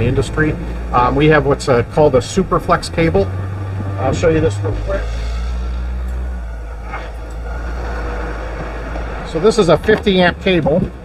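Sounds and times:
low mechanical rumble and hum: 0.0 - 11.0.

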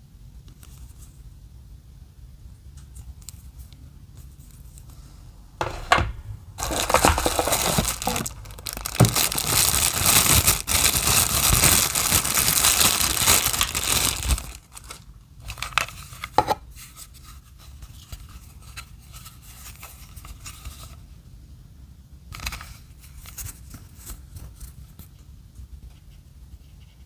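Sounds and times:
handling noise: 5.6 - 14.6
plastic bag crinkling: 5.6 - 16.1.

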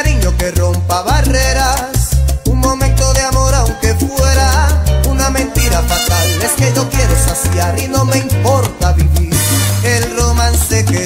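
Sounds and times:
salsa music: 0.0 - 11.0.

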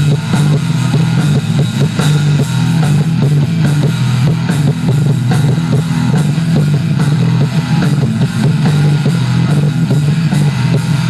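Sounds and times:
drum kit beat: 0.0 - 11.0
electric bass note: 0.0 - 11.0
electric guitars: 0.0 - 11.0.

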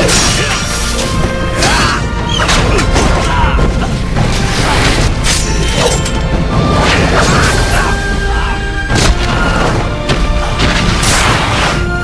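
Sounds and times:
dramatic fight music: 0.0 - 12.0.

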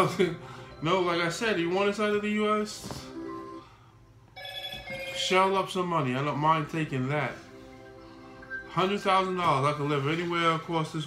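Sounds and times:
ringtone-like electronic chord: 7.5 - 9.3.

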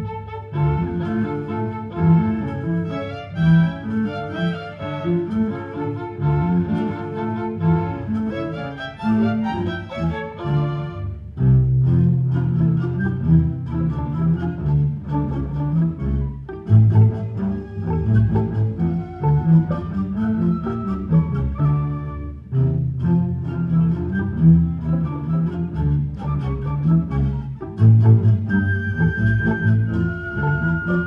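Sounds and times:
bowed strings: 0.0 - 31.0
orchestra playing: 0.0 - 31.0.

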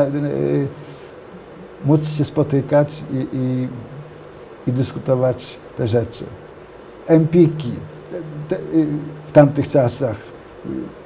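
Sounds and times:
man speaking: 0.0 - 0.9, 1.6 - 11.0
man humming hesitation filler: 3.0 - 4.2, 8.0 - 9.3, 10.6 - 11.0.

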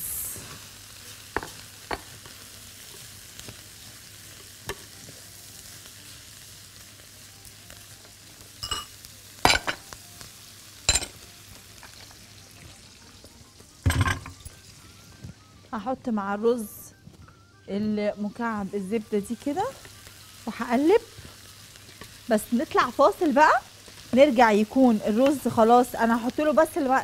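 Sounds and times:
rice sizzling in pot: 0.0 - 15.2, 18.0 - 27.0.

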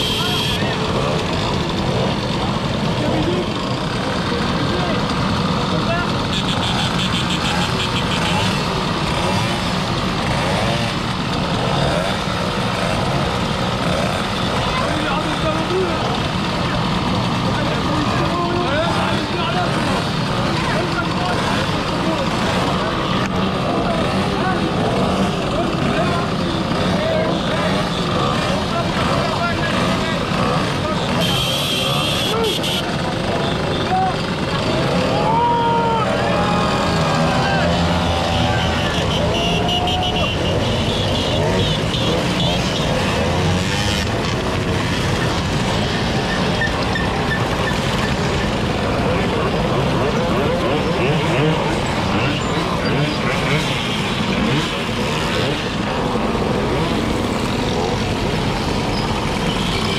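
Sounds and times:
mopeds idling and revving: 0.0 - 59.9.

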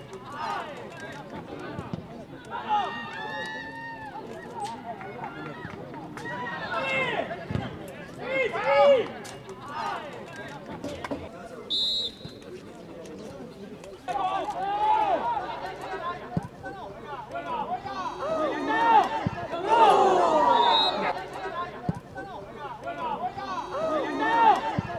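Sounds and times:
referee's whistle blast: 11.7 - 12.4, 20.5 - 21.2
men shouting: 17.4 - 21.2, 22.8 - 24.9.

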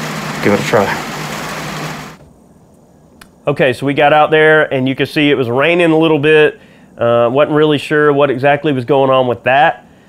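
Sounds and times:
rain on a metal roof: 0.0 - 2.2.

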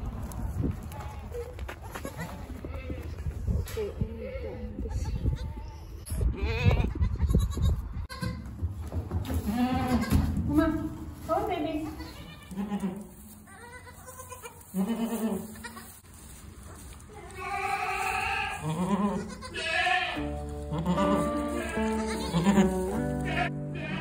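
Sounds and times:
goat kids bleating: 0.9 - 3.2, 4.2 - 8.5, 9.4 - 10.2, 11.8 - 16.0, 17.1 - 24.0
background music: 20.2 - 24.0.

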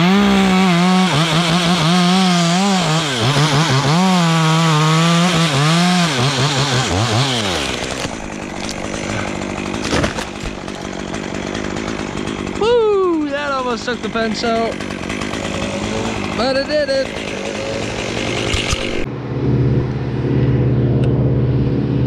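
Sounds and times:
chainsaw cutting through wood: 0.0 - 19.1.

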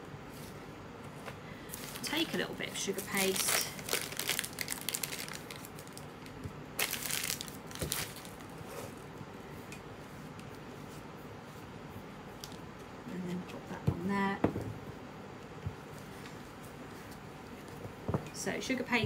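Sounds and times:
plastic wrapping crinkling: 1.7 - 9.0.

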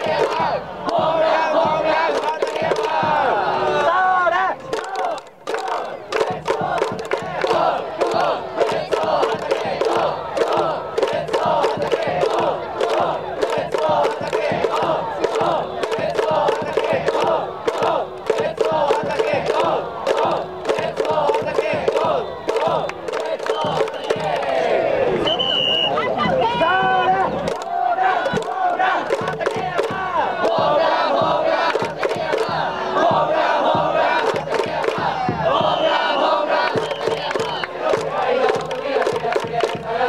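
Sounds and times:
rhythmic beat: 0.0 - 3.6, 5.3 - 24.6, 26.2 - 40.0
crowd chanting in unison: 0.0 - 40.0.

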